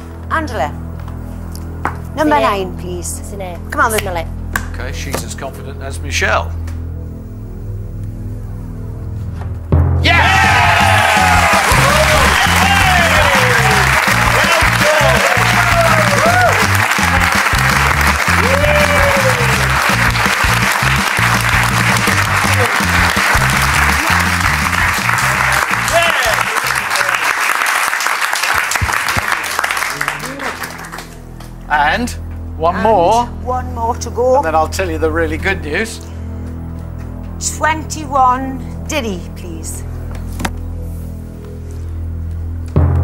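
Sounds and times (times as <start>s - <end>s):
show music with pulsing beat: 9.8s - 26.8s
audience cheering and applauding: 10.0s - 31.2s.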